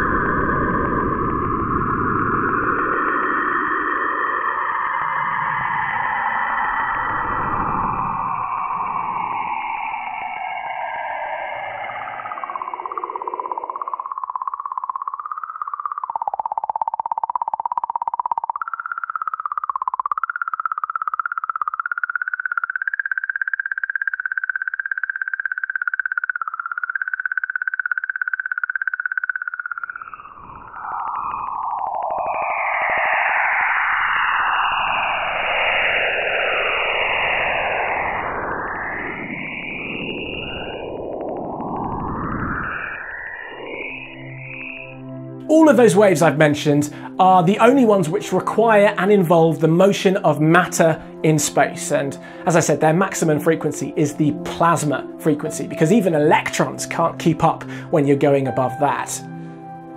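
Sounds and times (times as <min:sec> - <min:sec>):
hissing band of gliding tones: 0:00.0 - 0:21.4, 0:29.4 - 0:57.0
warbling electronic tone: 0:00.0 - 0:59.9.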